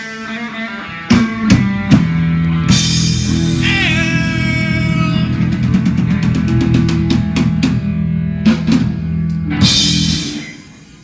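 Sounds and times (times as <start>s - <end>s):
bass guitar: 0.0s - 11.0s
electric guitar chords: 0.0s - 11.0s.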